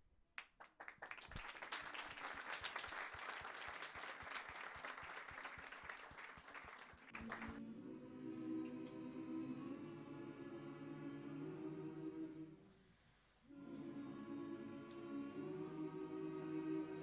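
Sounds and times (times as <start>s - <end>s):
crowd applauding: 0.6s - 7.7s
music with sustained notes: 7.1s - 12.7s, 13.5s - 17.0s.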